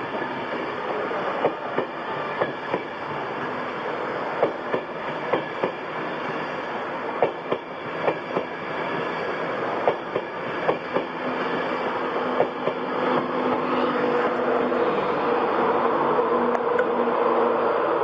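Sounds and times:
electric locomotive hum: 0:00.0 - 0:18.0
train wheels clacking over rail joints: 0:00.9 - 0:02.9, 0:04.4 - 0:05.8, 0:07.2 - 0:08.6, 0:09.8 - 0:11.2.

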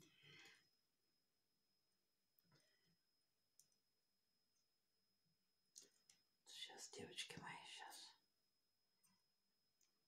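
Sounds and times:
woman whispering: 0:06.5 - 0:08.2.

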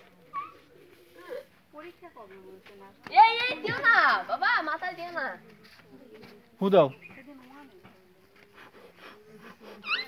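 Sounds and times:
children's voices at play: 0:00.2 - 0:06.4.

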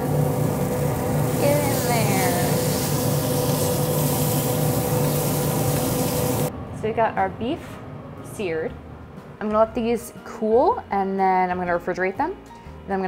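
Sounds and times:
steaks sizzling in a pan: 0:00.0 - 0:06.5
steady hum with held tone: 0:00.0 - 0:09.0.

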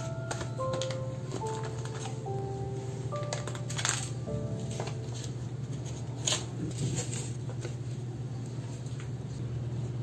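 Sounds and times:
paper packets rustling and tapping: 0:00.0 - 0:02.5, 0:03.1 - 0:08.0
soft music of held notes: 0:00.0 - 0:06.5.

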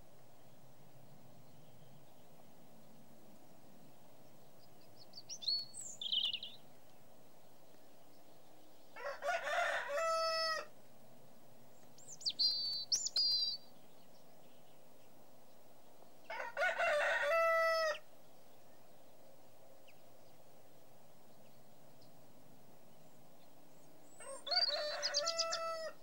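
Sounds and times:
small birds chirping: 0:00.2 - 0:09.0, 0:10.8 - 0:16.3, 0:18.0 - 0:25.9
rooster crowing: 0:09.0 - 0:10.7, 0:16.3 - 0:18.0, 0:24.2 - 0:26.0.

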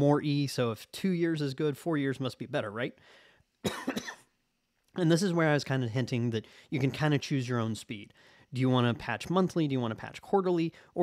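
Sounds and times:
man coughing: 0:03.6 - 0:04.4.

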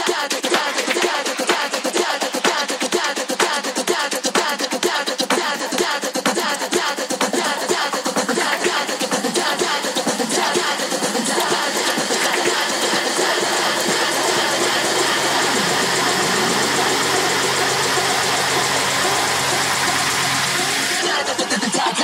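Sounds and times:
noisy electronic techno build-up: 0:00.0 - 0:22.0.

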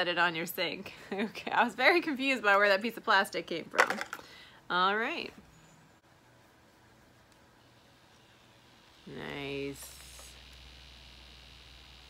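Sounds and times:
facial brush vibrating buzz: 0:07.6 - 0:12.0.

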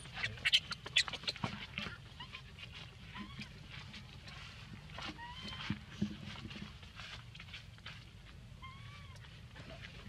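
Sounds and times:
baby monkey squeaking: 0:00.0 - 0:02.5, 0:03.1 - 0:03.5, 0:08.6 - 0:09.2.

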